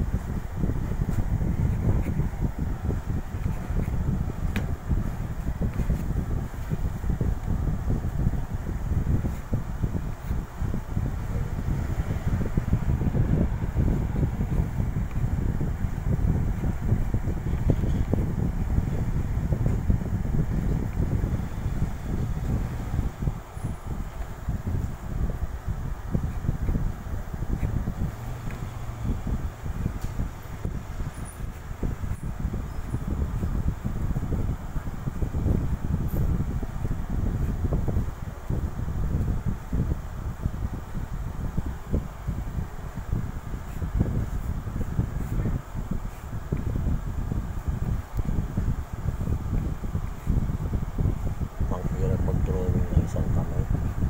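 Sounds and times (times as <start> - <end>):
air buffeting microphone: 0.0 - 54.0.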